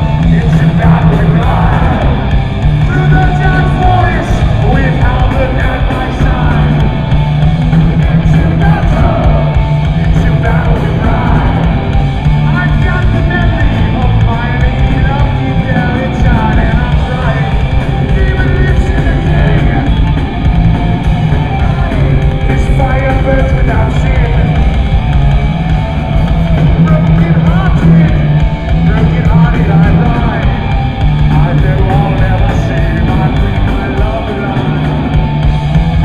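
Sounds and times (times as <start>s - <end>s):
bass guitar: 0.0s - 36.0s
distorted electric guitar: 0.0s - 36.0s
drum kit: 0.0s - 36.0s.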